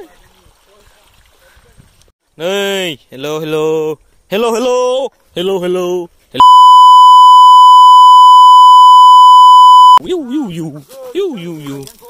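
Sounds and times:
censor bleep: 6.4s - 10.0s.

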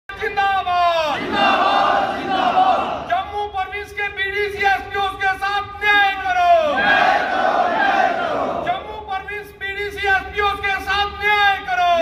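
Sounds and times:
crowd of men chanting: 1.1s - 3.1s, 6.7s - 8.7s
man shouting: 3.1s - 6.8s, 8.6s - 12.0s.

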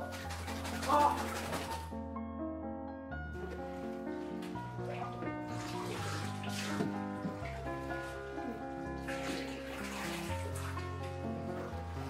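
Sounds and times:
water splashing in a bathtub: 0.0s - 2.0s, 3.4s - 12.0s.

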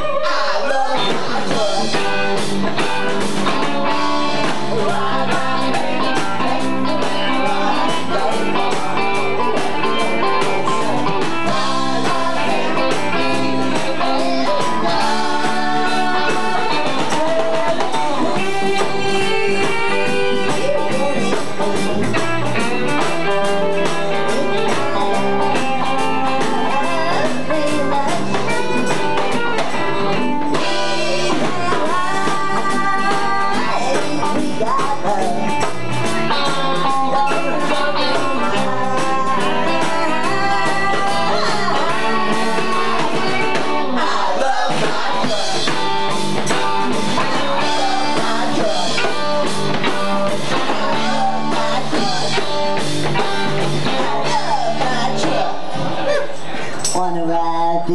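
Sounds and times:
woman singing: 0.0s - 2.3s, 3.9s - 21.6s, 24.2s - 45.8s, 46.5s - 55.7s
drums: 0.0s - 57.9s
electric guitar: 0.0s - 57.9s.

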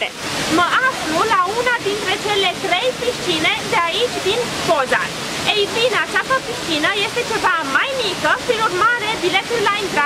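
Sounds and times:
waterfall rushing into pool: 0.0s - 10.0s
woman speaking: 0.0s - 10.0s.

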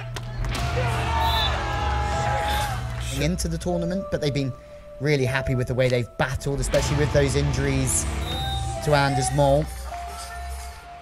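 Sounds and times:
crowd cheering: 0.0s - 3.2s
background music: 0.0s - 11.0s.

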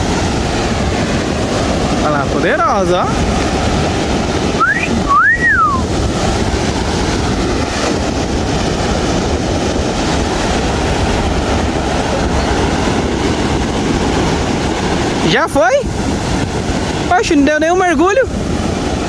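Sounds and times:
surf breaking on beach: 0.0s - 19.0s
wind on microphone: 0.0s - 19.0s
two-note wolf whistle: 4.6s - 5.8s.

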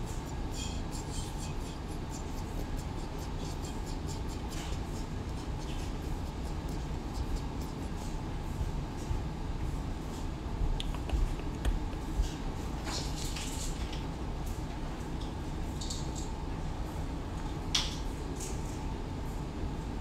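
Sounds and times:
low room rumble: 0.0s - 20.0s.

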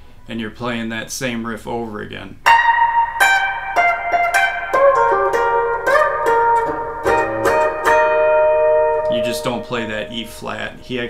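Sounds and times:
electric guitar riff with bends: 2.4s - 11.0s.

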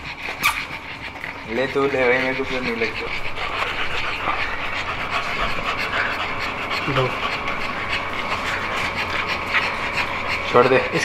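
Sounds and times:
dog panting rapidly: 0.0s - 11.0s.

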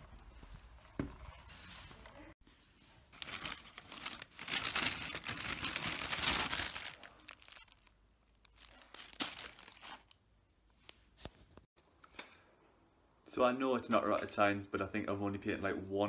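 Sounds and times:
paper bag rustling: 2.8s - 7.9s, 8.5s - 10.2s.

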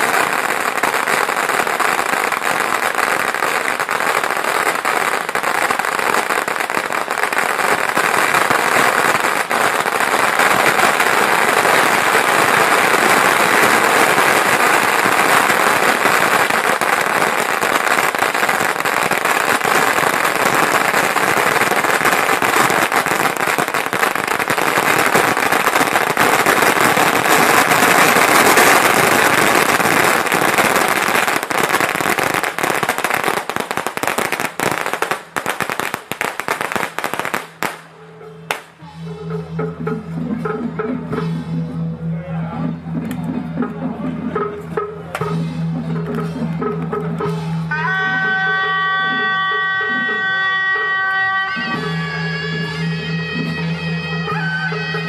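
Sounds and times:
firecrackers crackling and banging: 0.0s - 41.8s, 42.8s - 55.0s.

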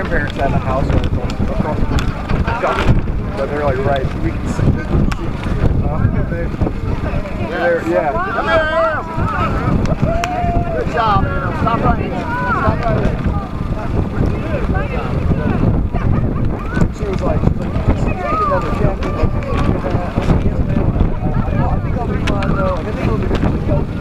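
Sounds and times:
people talking indistinctly: 0.0s - 24.0s
wind buffeting microphone: 0.0s - 24.0s.

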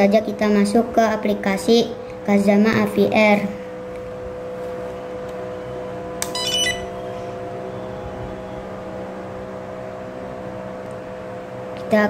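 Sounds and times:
steady hum of held tones: 0.0s - 12.0s
high chirping burst: 6.3s - 7.2s.

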